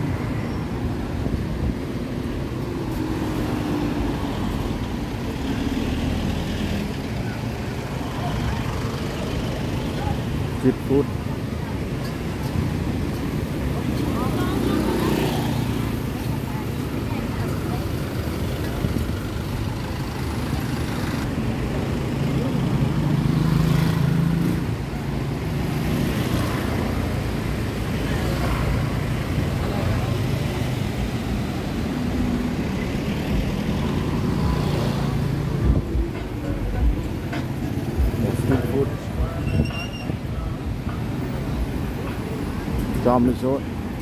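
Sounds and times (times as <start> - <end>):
road traffic passing close: 0.0 - 44.0.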